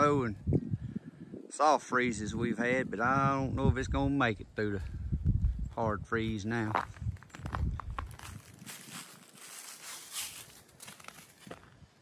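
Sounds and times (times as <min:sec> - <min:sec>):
footsteps crunching dry leaves: 0:06.8 - 0:11.9.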